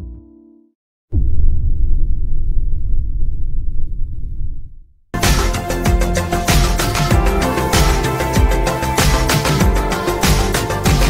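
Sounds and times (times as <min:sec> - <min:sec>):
deep rumbling sound effect: 0:01.1 - 0:10.5.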